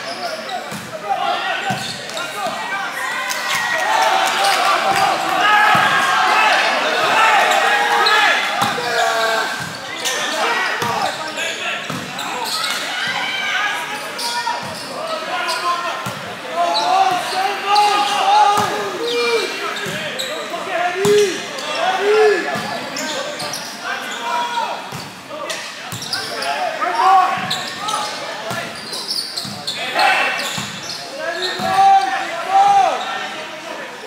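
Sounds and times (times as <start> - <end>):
people shouting: 2.4 - 9.6.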